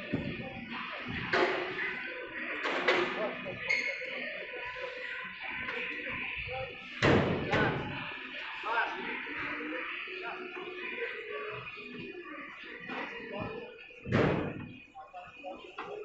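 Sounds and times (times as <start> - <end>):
background music: 0.0 - 16.0
voices: 0.0 - 16.0.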